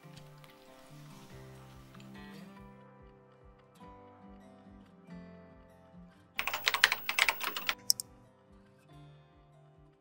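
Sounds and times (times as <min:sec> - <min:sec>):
soft background music: 0:00.0 - 0:10.0
keyboard typing: 0:06.4 - 0:08.0
sharp click: 0:06.4 - 0:08.0.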